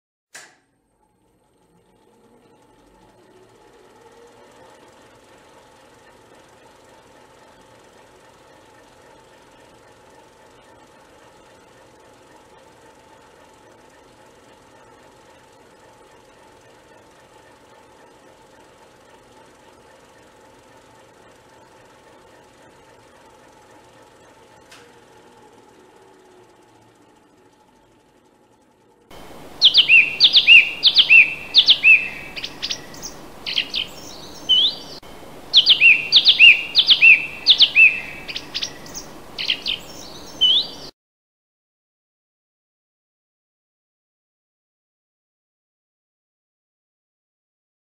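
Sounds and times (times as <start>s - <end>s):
faint steady hum: 0.5s - 40.9s
steady background hiss: 25.0s - 40.9s
songbird whistled notes: 29.2s - 40.9s.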